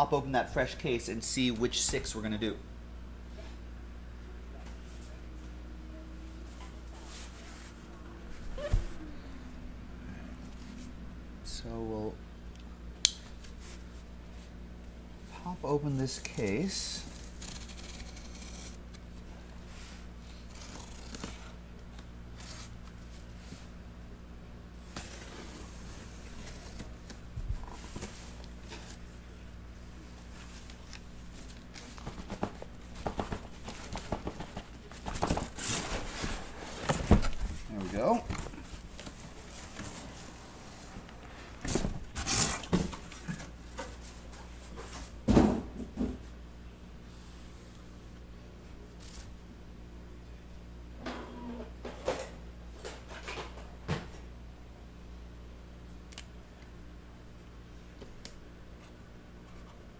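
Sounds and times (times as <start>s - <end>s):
steady low hum: 0.0s - 59.9s
cardboard scraping and tearing: 17.0s - 18.8s, 20.3s - 21.5s
shrink-wrapped boxes rustling: 30.2s - 40.4s.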